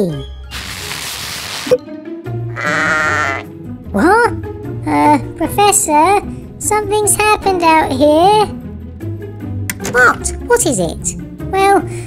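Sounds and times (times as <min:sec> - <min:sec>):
background music: 0:00.0 - 0:12.0
sheep bleat: 0:02.5 - 0:03.5.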